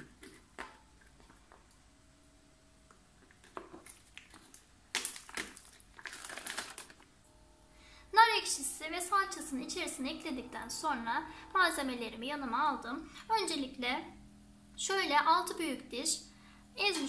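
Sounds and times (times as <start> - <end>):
plastic packets crinkling: 3.3 - 7.1.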